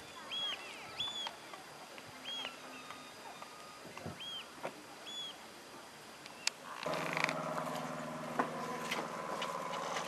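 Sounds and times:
vehicle engine running: 0:06.9 - 0:10.0.

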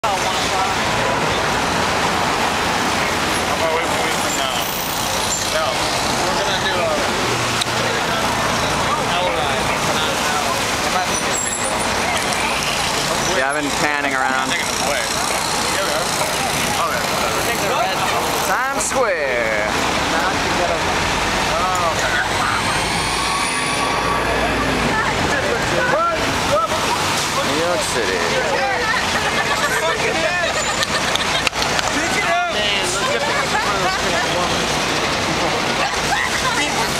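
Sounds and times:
crowd chatter: 0:00.0 - 0:36.9
many people talking: 0:00.0 - 0:36.9
passing car traffic: 0:00.0 - 0:36.9.

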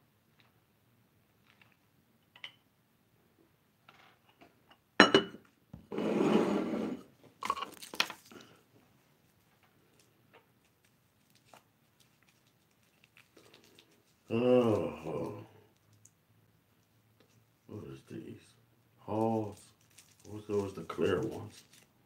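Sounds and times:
wrapper crinkling and tearing: 0:07.4 - 0:08.6, 0:09.9 - 0:16.1, 0:19.1 - 0:22.0.

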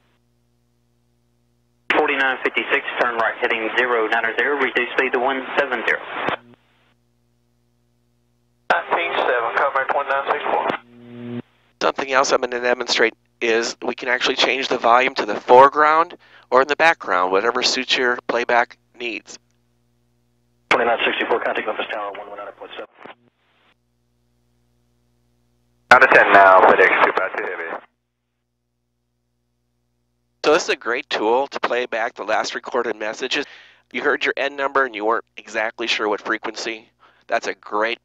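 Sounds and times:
faint steady hum: 0:00.0 - 0:38.0
radio voice: 0:01.9 - 0:06.4, 0:08.7 - 0:10.8, 0:20.7 - 0:23.2, 0:25.9 - 0:27.8.

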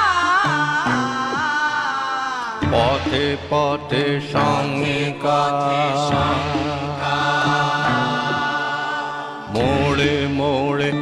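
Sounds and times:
person singing long wavering notes: 0:00.0 - 0:11.0
song accompaniment: 0:00.0 - 0:11.0.

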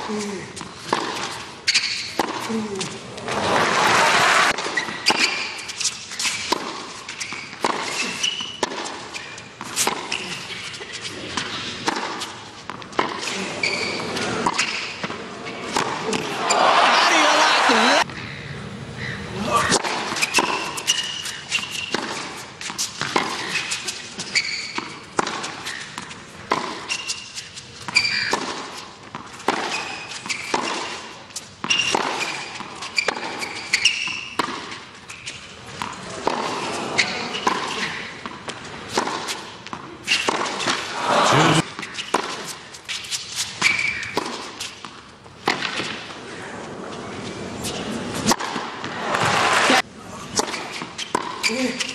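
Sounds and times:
tennis ball struck by rackets: 0:00.9 - 0:02.5, 0:06.2 - 0:10.3, 0:11.3 - 0:16.5, 0:19.7 - 0:23.6, 0:24.7 - 0:27.1, 0:27.8 - 0:31.0, 0:31.6 - 0:34.8, 0:37.3 - 0:41.0, 0:41.7 - 0:42.6, 0:43.5 - 0:46.1, 0:48.2 - 0:49.7, 0:50.3 - 0:51.5
shoe squeaks: 0:01.2 - 0:02.9, 0:04.5 - 0:15.8, 0:19.0 - 0:28.6, 0:29.4 - 0:38.2, 0:40.0 - 0:44.9, 0:50.4 - 0:51.9
crowd noise: 0:15.3 - 0:18.1, 0:40.9 - 0:41.6.

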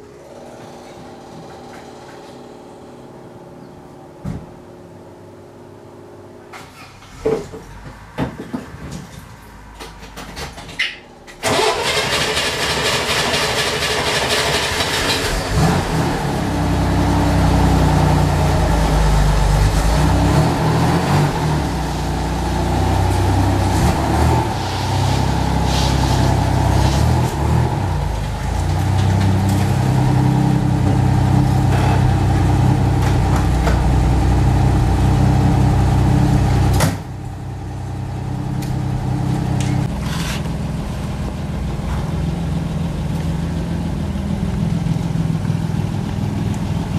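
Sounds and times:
engine starter cranking: 0:11.4 - 0:15.5
car engine running and revving: 0:13.5 - 0:46.9.

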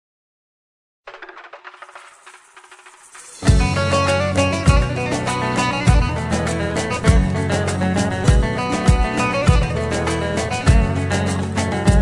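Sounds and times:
plucked saz strokes: 0:03.4 - 0:12.0.

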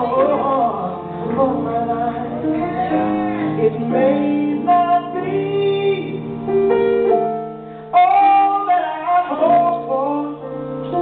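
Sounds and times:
gospel singing: 0:00.0 - 0:06.3, 0:08.0 - 0:11.0.

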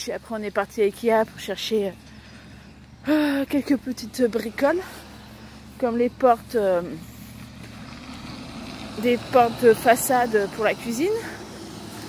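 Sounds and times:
low background rumble: 0:00.0 - 0:08.1.

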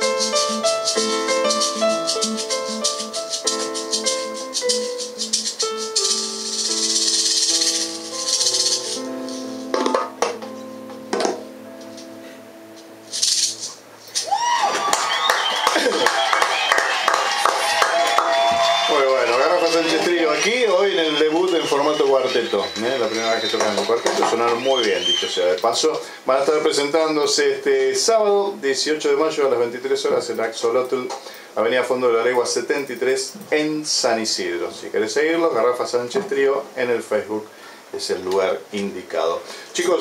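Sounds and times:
live funk-jazz band playing: 0:00.0 - 0:09.8
rattling shaker: 0:00.0 - 0:10.0, 0:13.0 - 0:14.3.

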